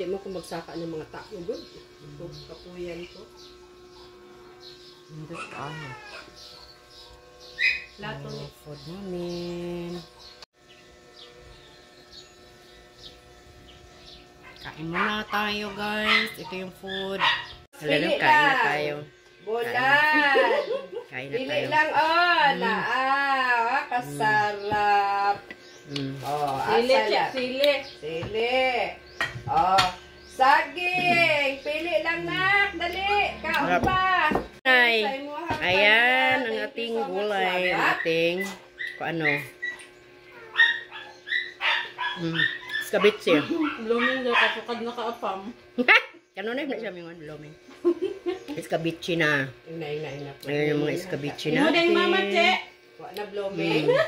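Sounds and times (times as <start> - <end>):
dog whimpering: 5.3 - 6.4, 38.0 - 44.6.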